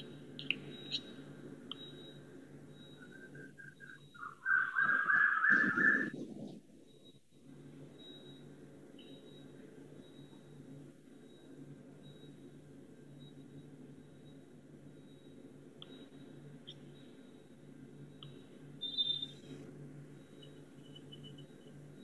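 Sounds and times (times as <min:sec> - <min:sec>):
faint room hum: 0:00.0 - 0:22.0
high steady whistle-like tone: 0:00.0 - 0:22.0
sharp clicks: 0:00.4 - 0:01.1.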